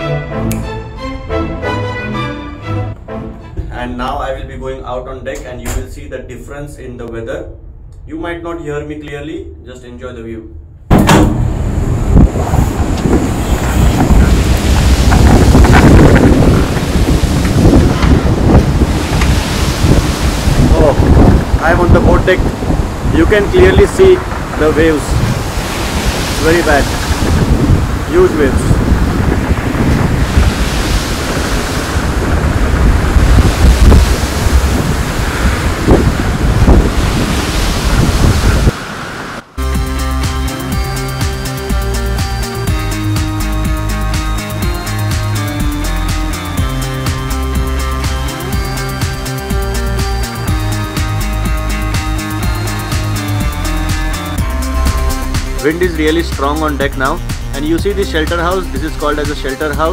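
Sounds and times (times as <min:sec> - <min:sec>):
music: 0:00.0 - 0:05.0, 0:14.9 - 0:21.0, 0:39.6 - 0:59.9
strong wind: 0:10.6 - 0:39.6
waves breaking: 0:10.9 - 0:59.9.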